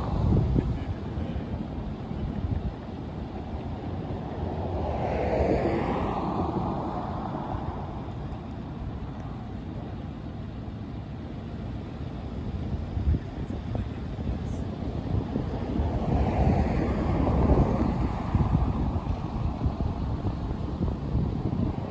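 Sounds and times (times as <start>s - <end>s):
wind rumble on microphone: 0.0s - 21.9s
vehicle passing: 3.7s - 9.4s, 14.8s - 21.9s.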